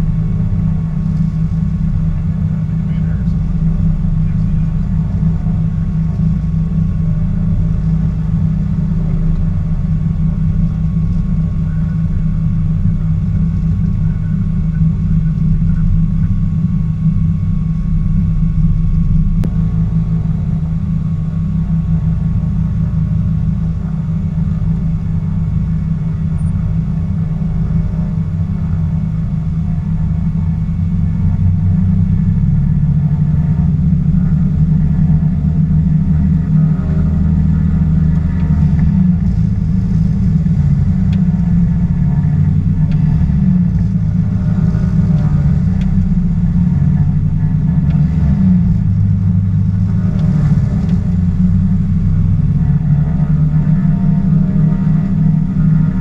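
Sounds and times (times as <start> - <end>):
twin piston aircraft engines droning: 0.0 - 56.0.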